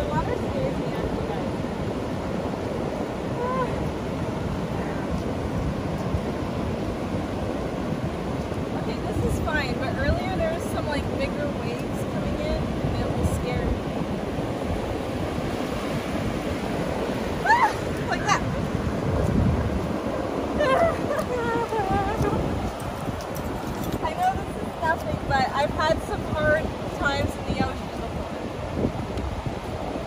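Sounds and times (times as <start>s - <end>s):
ocean surf breaking on beach: 0.0s - 30.0s.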